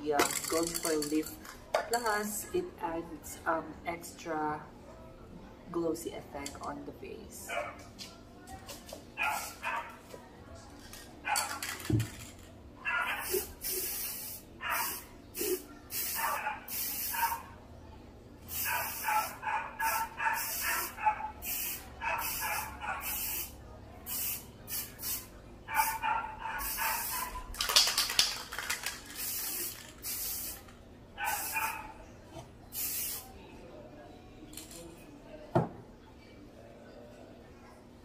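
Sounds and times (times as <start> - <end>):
aerosol spray can hissing: 13.2 - 17.2, 29.1 - 30.6, 32.8 - 33.2.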